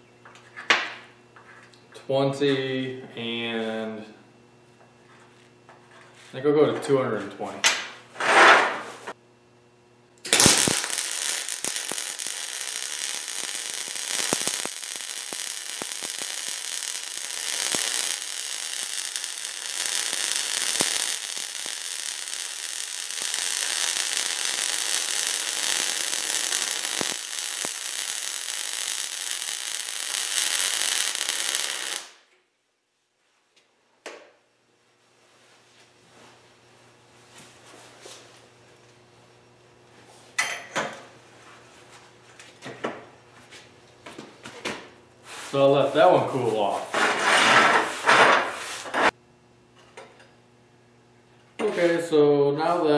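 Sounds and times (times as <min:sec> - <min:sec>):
welding arc crackling hiss: 0:10.2 - 0:32.3, 0:45.2 - 0:49.2.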